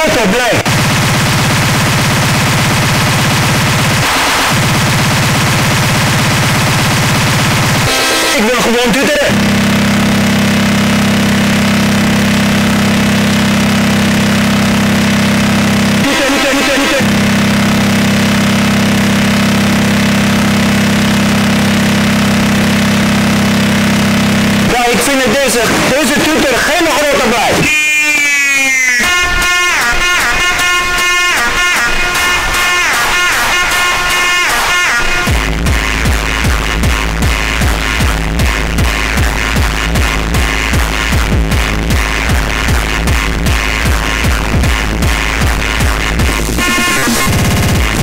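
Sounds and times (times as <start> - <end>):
fast distorted kick drums: 0.0 - 27.8, 29.0 - 48.0.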